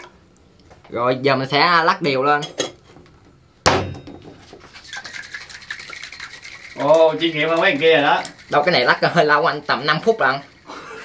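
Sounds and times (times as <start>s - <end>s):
cocktail shaker shaking liquid: 4.4s - 11.0s.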